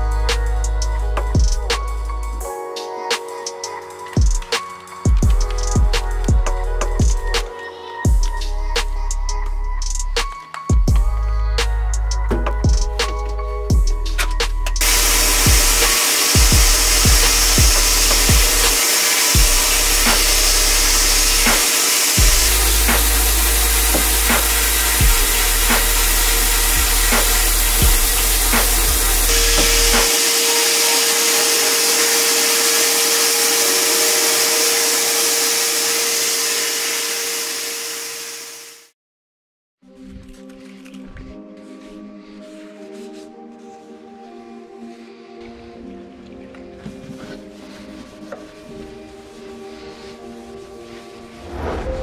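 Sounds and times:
background music with thumping beat: 0.0 - 33.7
sandblast gun hissing: 14.8 - 38.9, 47.5 - 52.0.

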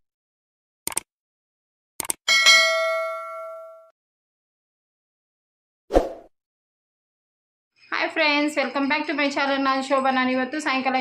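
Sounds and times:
notification bell ding: 2.3 - 3.9.

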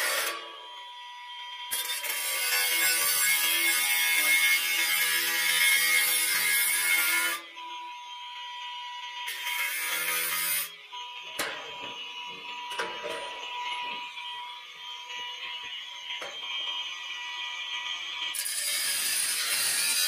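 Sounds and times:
angle grinder cutting steel: 0.0 - 0.9, 1.6 - 7.7, 9.2 - 20.0
sharp clicks and knocks: 11.4 - 12.0, 12.7 - 14.0.

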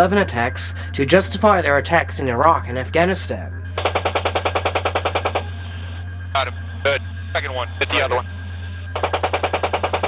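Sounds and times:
steady low hum: 0.0 - 10.0
automatic cannon fire: 3.8 - 5.5, 9.0 - 10.0.

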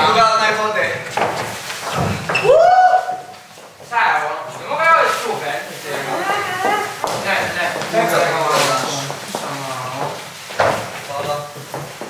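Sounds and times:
people talking: 0.0 - 1.1, 3.9 - 10.3, 11.0 - 11.7.

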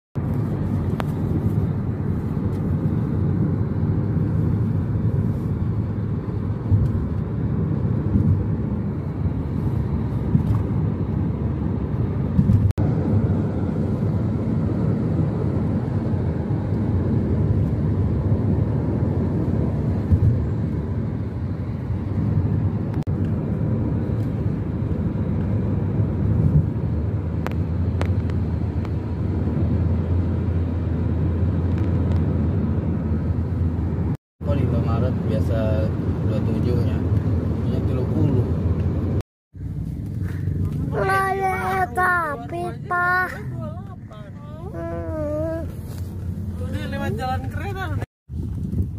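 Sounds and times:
vehicle cabin road rumble: 0.2 - 48.9.

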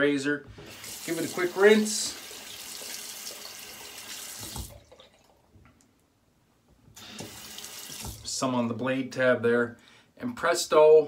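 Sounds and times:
sink tap running: 0.6 - 4.8, 7.0 - 8.3.

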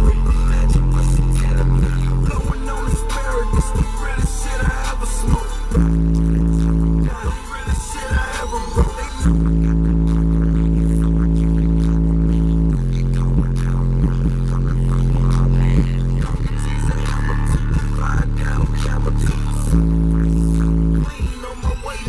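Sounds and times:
bass-heavy music on car stereo: 0.0 - 22.0.

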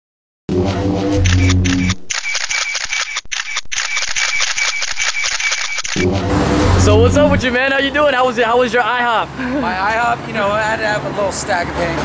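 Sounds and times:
high pulsing tone: 0.5 - 2.3, 4.4 - 7.5
rapid camera shutter clicks: 1.2 - 6.0.

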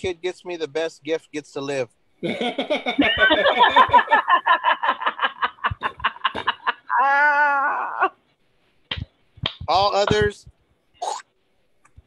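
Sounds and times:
person laughing heartily: 2.2 - 8.2.

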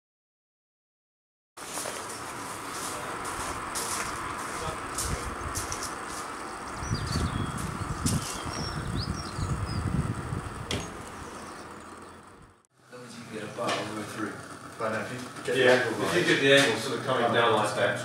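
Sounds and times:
footsteps crunching on gravel: 1.6 - 8.6
outdoor background hiss: 1.6 - 18.0.

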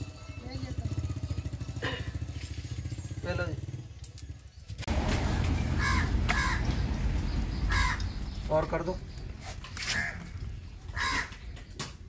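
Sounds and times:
engine running: 0.0 - 11.6.

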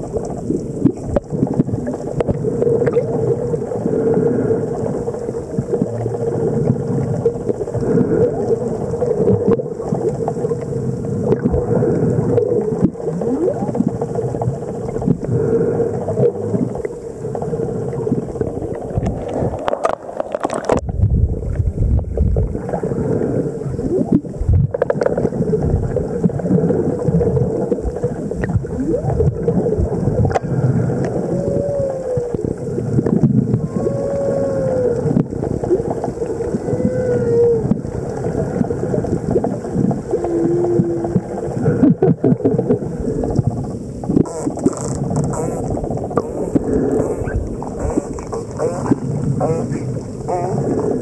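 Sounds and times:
underwater water rush: 0.0 - 51.0
underwater clicks: 18.1 - 22.8, 24.1 - 25.4, 30.2 - 31.2, 37.6 - 51.0
marine mammal calls: 44.2 - 51.0.

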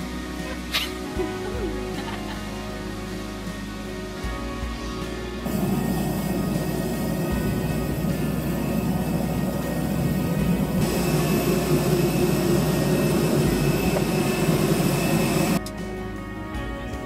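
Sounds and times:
jet airliner engine whine: 5.4 - 15.6.

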